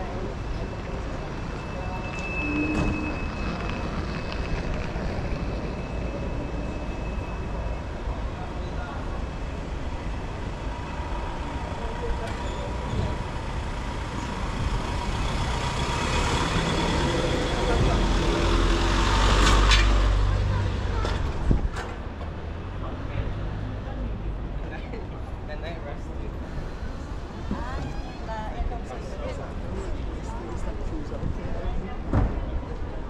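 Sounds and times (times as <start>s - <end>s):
truck engine rumbling: 0.0s - 24.6s
street traffic: 0.0s - 33.0s.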